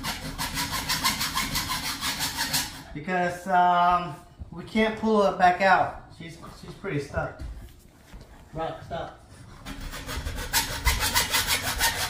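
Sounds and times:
hand saw rasping through metal: 0:00.0 - 0:02.9, 0:09.5 - 0:12.0.

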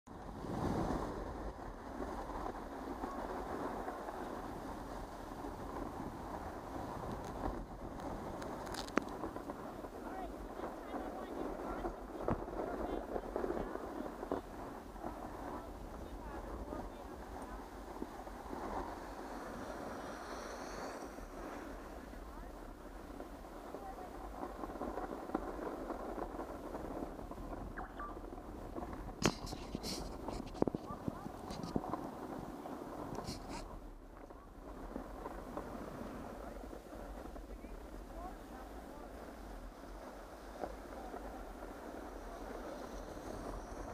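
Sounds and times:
skis sliding over packed snow: 0:00.1 - 0:43.9
wind on microphone: 0:00.1 - 0:43.9.

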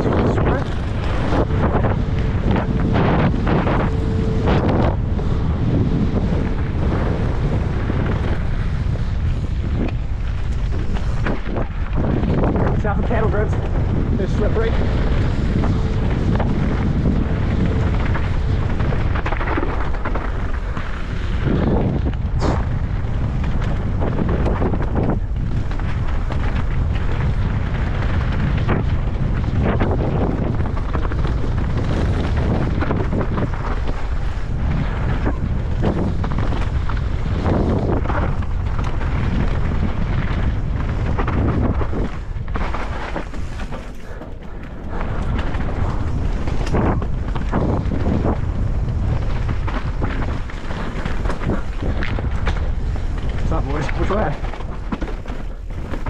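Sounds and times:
bike knocking and rattling: 0:00.0 - 0:56.0
tyres on gravel and dirt: 0:00.0 - 0:56.0
wind buffeting microphone: 0:00.0 - 0:56.0.

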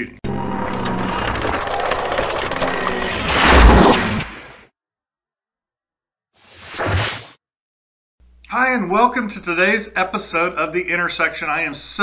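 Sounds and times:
whoosh sound effect: 0:02.9 - 0:04.6.

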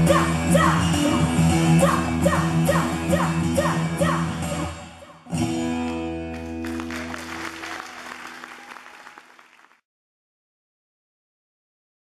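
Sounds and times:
audience applause: 0:06.3 - 0:09.8.

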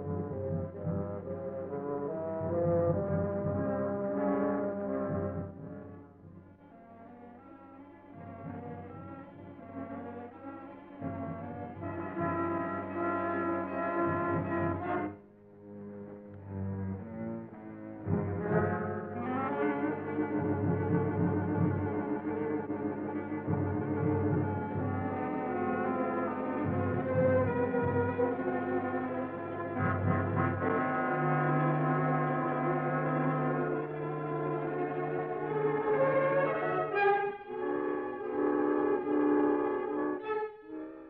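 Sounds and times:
dramatic orchestral music: 0:00.0 - 0:06.3, 0:16.2 - 0:41.0
low brass notes: 0:16.2 - 0:41.0.

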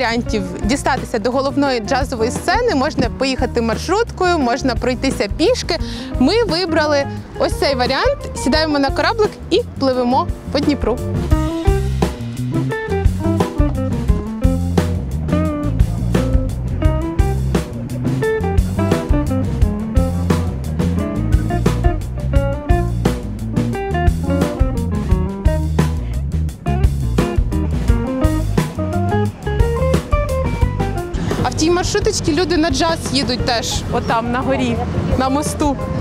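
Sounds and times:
drums keeping a steady beat: 0:00.0 - 0:06.8, 0:10.2 - 0:36.0
guitar: 0:00.0 - 0:36.0
instrumental jazz music: 0:00.0 - 0:36.0
stepping bass line: 0:00.0 - 0:36.0.

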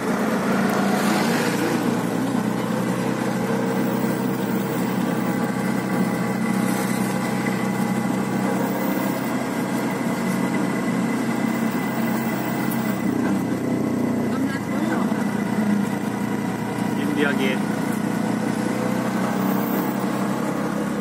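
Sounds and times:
auto-rickshaw engine running: 0:00.0 - 0:21.0
road noise: 0:00.0 - 0:21.0.

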